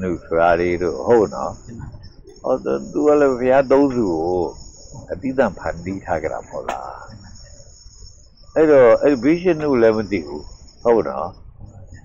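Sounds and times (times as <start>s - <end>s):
faint high-pitched trill: 0.0s - 12.0s
man speaking loudly: 8.6s - 11.3s.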